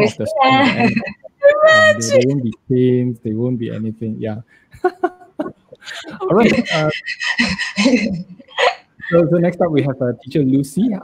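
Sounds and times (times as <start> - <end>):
person laughing: 0.0 - 1.2, 1.8 - 2.6, 4.8 - 10.0.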